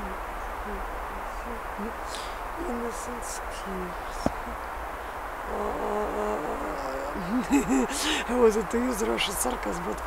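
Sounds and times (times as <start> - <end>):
woman singing low notes: 0.0 - 4.7, 5.4 - 9.6.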